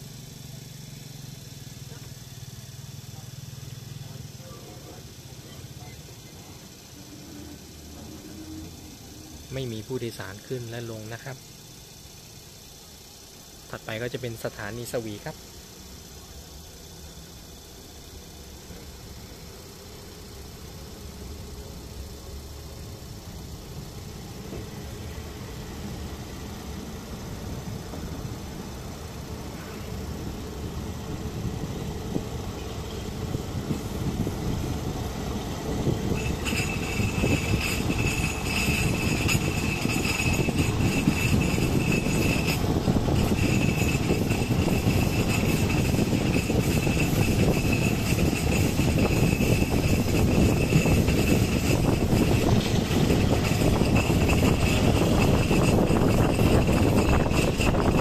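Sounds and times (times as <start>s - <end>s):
train wheels running on rails: 0.0s - 58.0s
steady high ringing tone: 2.8s - 58.0s.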